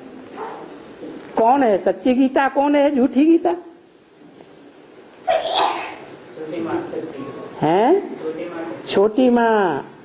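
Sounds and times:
person coughing or sneezing: 0:05.3 - 0:06.1.

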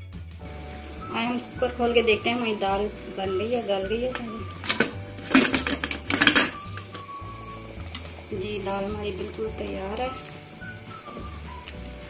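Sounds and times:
background music: 0:00.0 - 0:12.0
metal clattering and scraping: 0:04.2 - 0:07.1.

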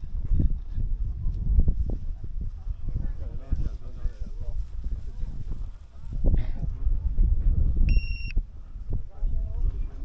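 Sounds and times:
wind buffeting microphone: 0:00.0 - 0:10.0
high electronic beep: 0:07.9 - 0:08.4.

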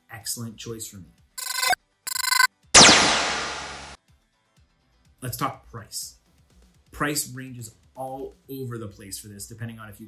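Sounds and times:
electronic ringtone tones: 0:01.4 - 0:02.5
loud crash: 0:02.8 - 0:04.0.

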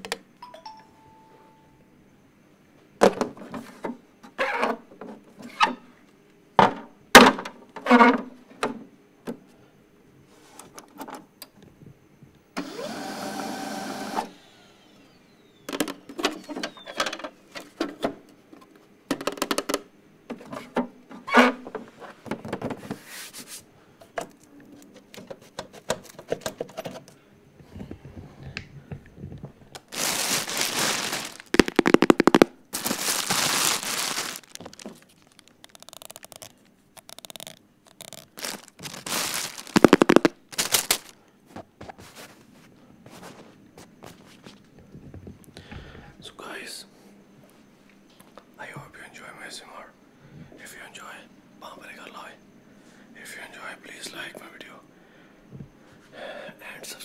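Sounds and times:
plastic bag crinkling: 0:29.8 - 0:41.2.

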